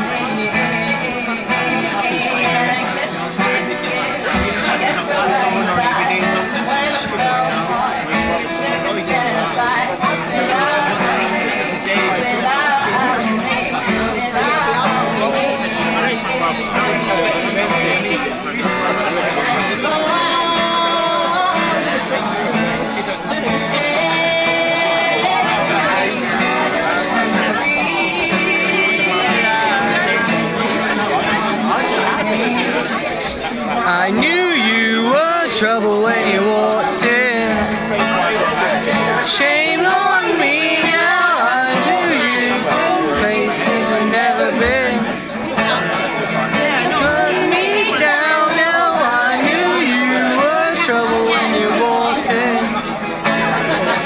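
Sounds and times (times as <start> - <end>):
crowd chatter: 0.0 - 54.0
live acoustic guitar and vocals: 0.0 - 54.0.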